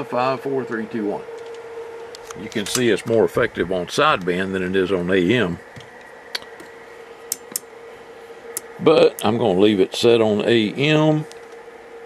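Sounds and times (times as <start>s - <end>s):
faint steady tone: 0.0s - 12.0s.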